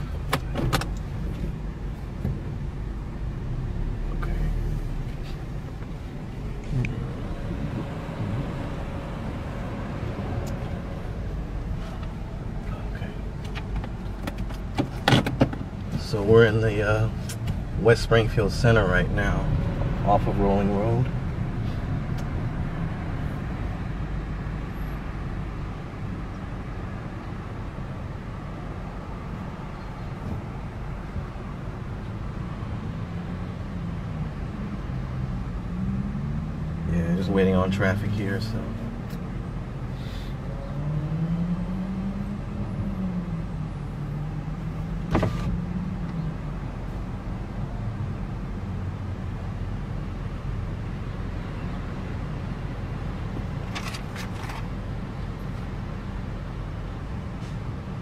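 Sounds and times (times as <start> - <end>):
car engine and road hum: 0.0 - 58.0
sharp clicks and knocks: 0.2 - 1.5, 13.4 - 16.0.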